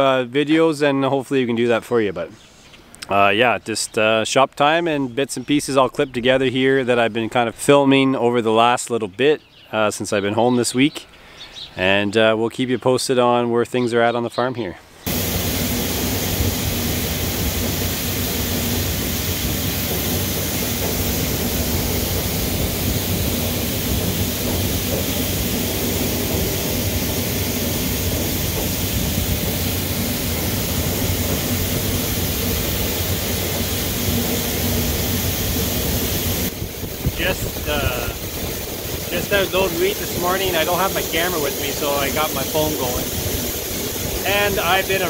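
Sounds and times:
outdoor hiss: 14.8 - 45.0
auger low hum: 15.1 - 45.0
grain pouring from auger: 15.1 - 45.0
man's voice: 37.2 - 38.2, 39.1 - 43.1, 44.2 - 45.0.

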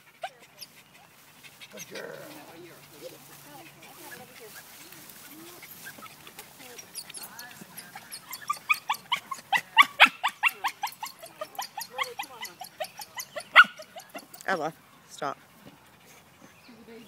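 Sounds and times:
dog whining and yipping: 6.9 - 14.3.

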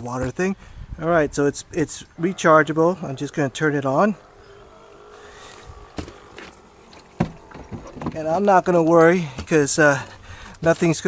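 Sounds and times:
sharp knocks: 5.9 - 8.2.

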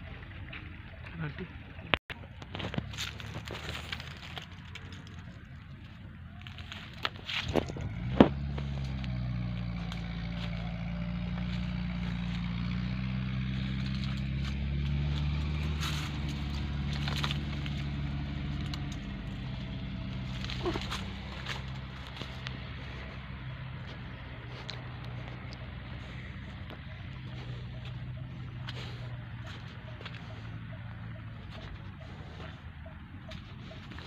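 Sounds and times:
motor engine droning: 0.0 - 34.0.

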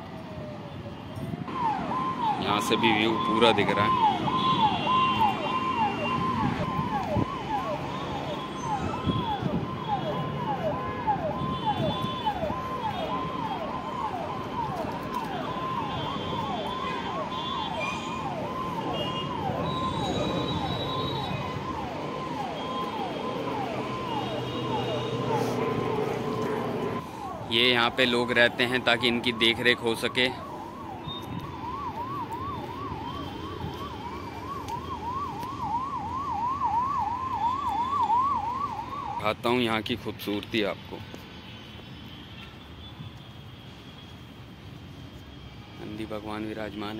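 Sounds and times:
electronic siren sweeping: 1.4 - 39.3.

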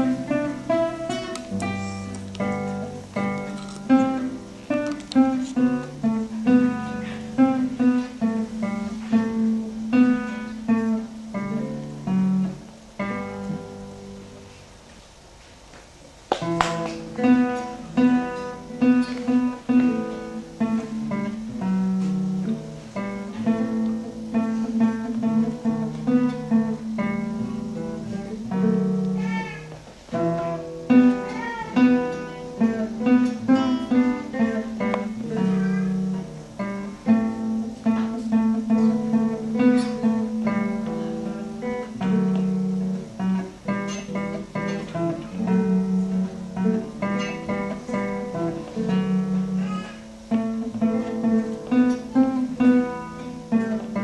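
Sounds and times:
classical guitars playing duet: 0.0 - 54.0.

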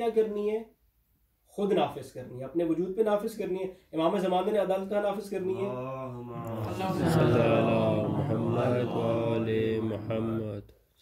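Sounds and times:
man chanting: 5.4 - 10.8.

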